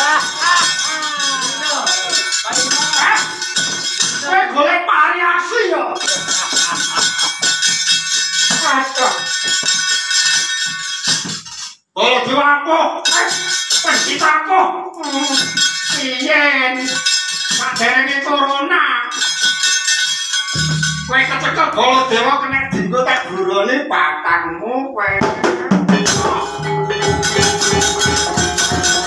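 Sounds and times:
gamelan music: 0.0 - 4.3, 6.0 - 11.7, 19.2 - 22.6, 26.0 - 29.0
metal plates clinking: 0.0 - 4.4, 6.0 - 11.8
low steady tone: 20.6 - 22.8
person singing or chanting: 21.1 - 29.0.

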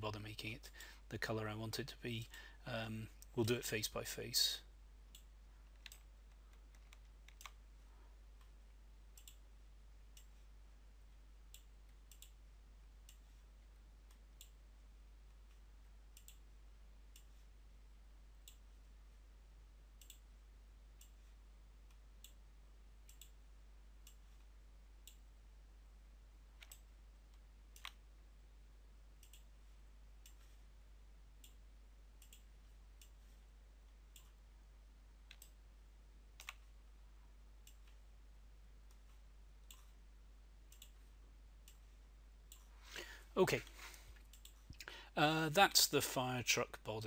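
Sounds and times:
faint low hum: 0.0 - 47.0.

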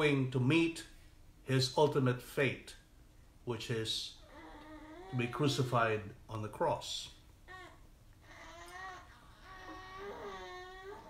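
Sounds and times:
faint high-pitched cries: 7.5 - 11.0.

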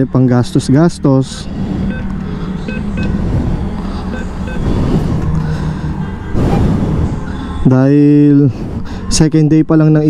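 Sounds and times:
low rumble of street traffic: 0.0 - 10.0
keypad beeping: 1.9 - 3.2, 4.1 - 4.6.

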